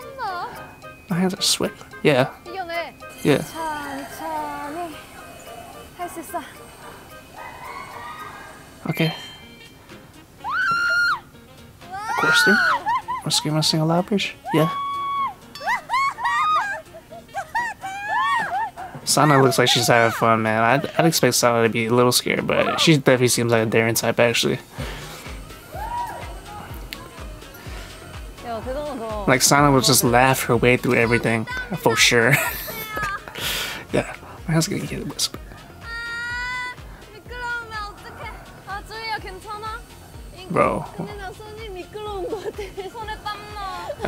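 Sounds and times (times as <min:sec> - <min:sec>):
background music: 0:00.0 - 0:44.0
young women screaming: 0:06.6 - 0:08.9, 0:10.4 - 0:11.3, 0:11.9 - 0:13.6, 0:14.4 - 0:20.9, 0:25.3 - 0:28.4, 0:35.8 - 0:36.8.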